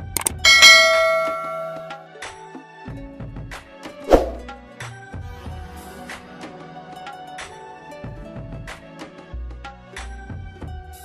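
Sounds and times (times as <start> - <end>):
bright bell ding: 0.2 - 2.0.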